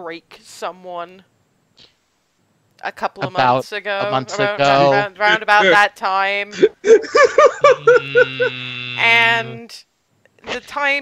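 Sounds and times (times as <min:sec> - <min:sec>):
person laughing: 0:03.2 - 0:05.8, 0:06.5 - 0:09.6
voice holding a steady tone: 0:03.2 - 0:05.9, 0:07.6 - 0:09.8.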